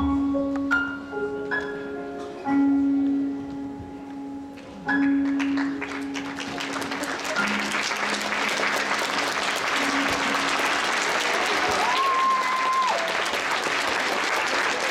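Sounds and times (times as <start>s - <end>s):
audience applauding: 5.2s - 14.9s.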